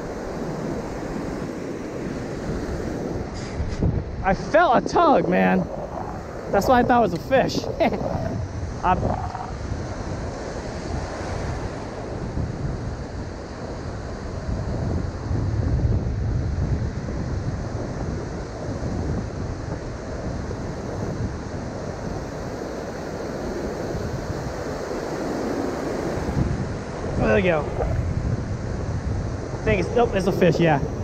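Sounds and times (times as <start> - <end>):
ocean surf breaking: 0.0 - 15.4, 17.3 - 31.0
wind rumbling on microphone: 0.0 - 31.0.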